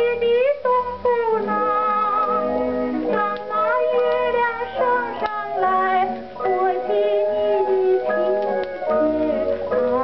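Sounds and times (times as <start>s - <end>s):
instrumental accompaniment: 0.0s - 10.0s
woman singing popular song: 0.0s - 10.0s.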